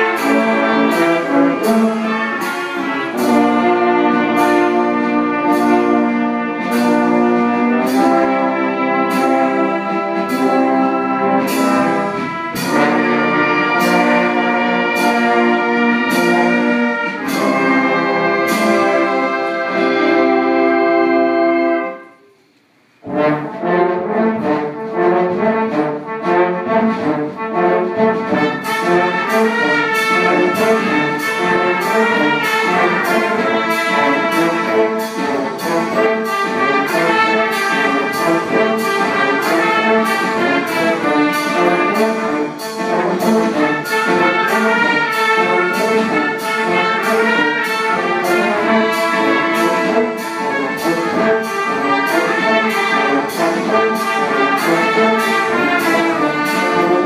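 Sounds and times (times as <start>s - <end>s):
drum beats: 0.0s - 20.4s
brass band playing: 0.0s - 57.0s.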